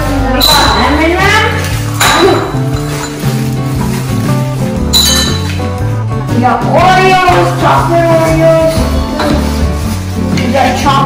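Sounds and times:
background music: 0.0s - 11.0s
candies clinking into a bowl: 4.9s - 5.7s.

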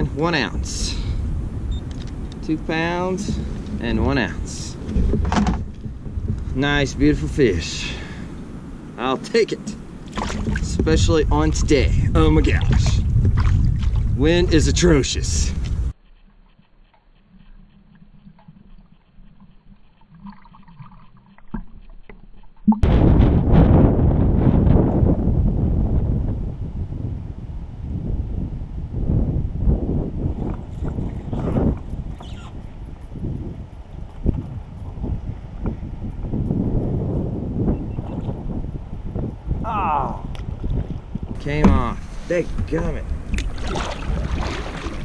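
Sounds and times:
gusting wind on microphone: 0.0s - 16.6s, 22.6s - 45.0s.

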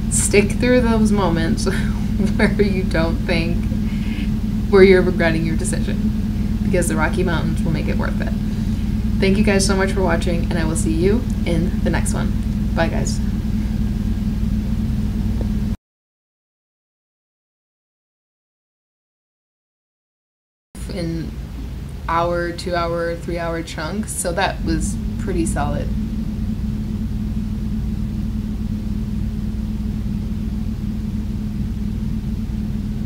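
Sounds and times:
air conditioner humming: 0.0s - 15.8s, 20.8s - 33.0s.

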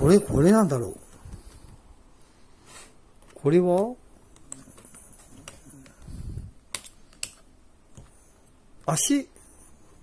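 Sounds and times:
sharp plastic clicks: 6.7s - 8.1s.

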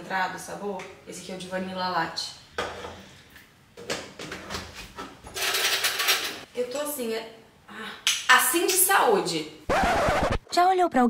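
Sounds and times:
cutlery rattling and clinking: 5.3s - 6.5s.

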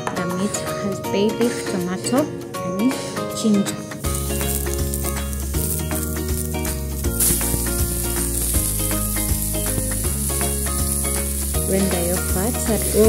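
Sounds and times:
pork fat sizzling in frying pan: 4.0s - 13.0s.

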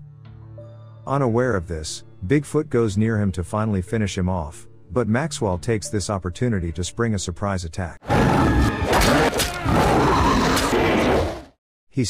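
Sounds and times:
creature roaring: 8.0s - 11.5s.

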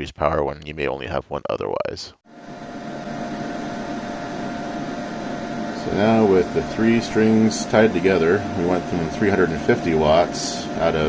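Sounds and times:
cooling fans whirring: 2.3s - 11.0s.

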